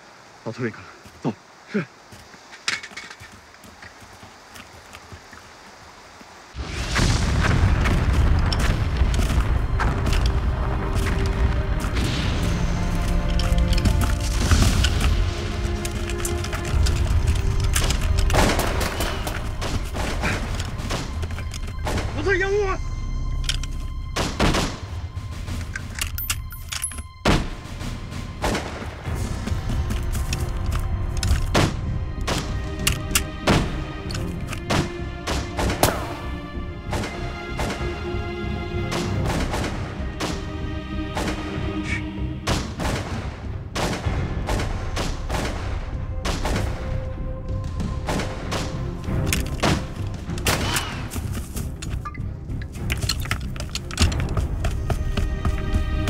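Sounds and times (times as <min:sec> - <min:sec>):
film music score: 0:00.0 - 0:56.0
explosions: 0:06.6 - 0:10.0.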